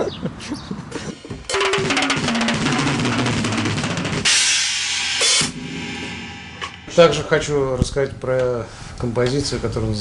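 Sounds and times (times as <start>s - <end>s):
rapid bass drum and snare: 1.4s - 5.6s
heavy metal band playing: 1.5s - 7.7s
cymbal crash: 1.5s - 7.8s.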